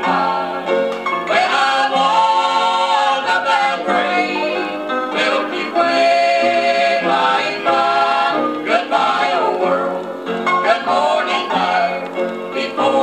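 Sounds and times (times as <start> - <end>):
gospel group singing in harmony: 0.0 - 13.0.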